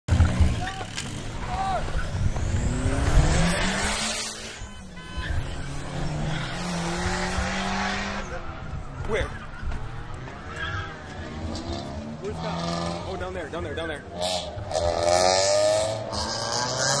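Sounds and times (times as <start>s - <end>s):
car engines revving: 0.1s - 17.0s
passing traffic rushing: 0.1s - 17.0s.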